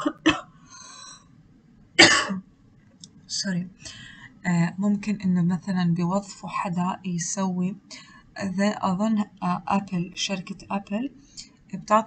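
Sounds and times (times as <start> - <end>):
woman coughing: 0.0 - 0.5, 2.0 - 2.4
breathy intake: 3.8 - 4.3.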